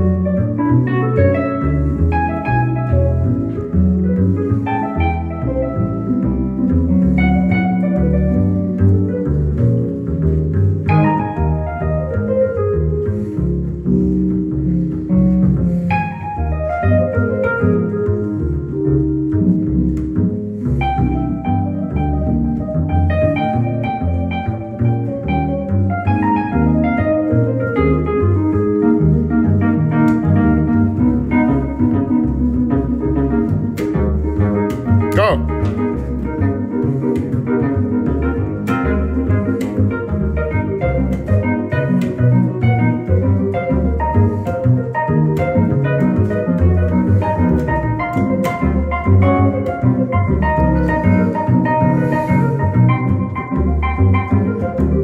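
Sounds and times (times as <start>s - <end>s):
plucked double bass: 0.0s - 55.0s.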